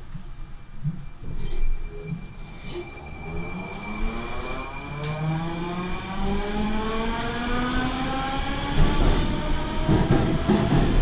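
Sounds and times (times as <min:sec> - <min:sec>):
wheels rumbling on rails: 0:00.0 - 0:11.0.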